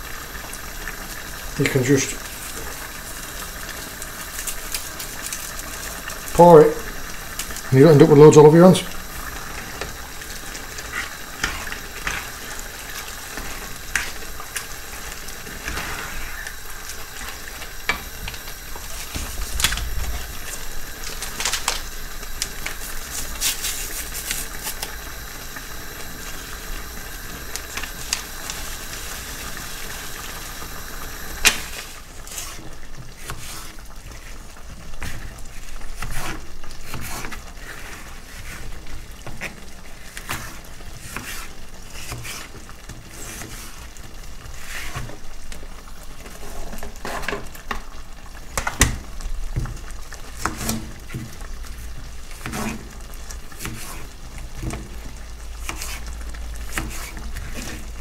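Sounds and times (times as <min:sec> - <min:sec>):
food sizzling in a pan: 0:00.0 - 0:58.0.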